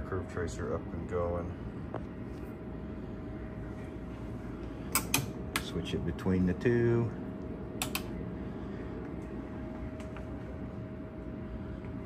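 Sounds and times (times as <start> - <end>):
switch clicking: 7.8 - 8.1.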